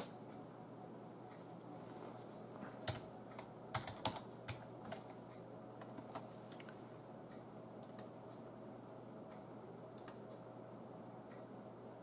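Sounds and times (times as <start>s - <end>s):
faint room hum: 0.0s - 12.0s
keyboard keystroke clicks: 7.8s - 8.1s, 10.0s - 10.2s.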